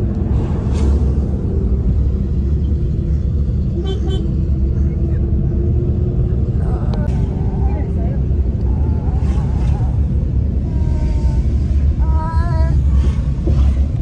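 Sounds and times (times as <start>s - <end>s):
car cabin road and engine rumble: 0.0s - 14.0s.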